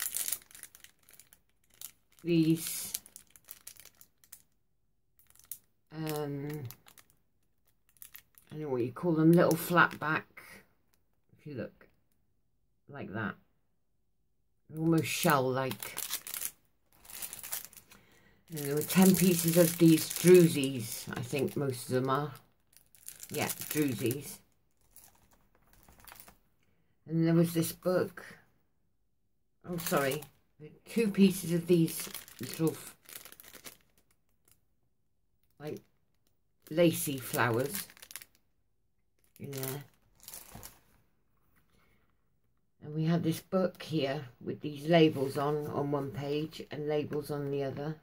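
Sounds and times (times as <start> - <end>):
plastic bag crinkling: 0.0 - 4.6, 5.2 - 8.6, 14.9 - 26.4, 29.7 - 34.6, 35.6 - 38.4, 39.2 - 41.0.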